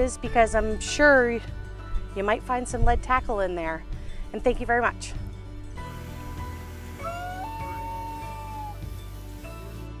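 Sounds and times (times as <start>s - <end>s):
soft background music: 0.0s - 10.0s
loon wailing: 6.9s - 9.0s.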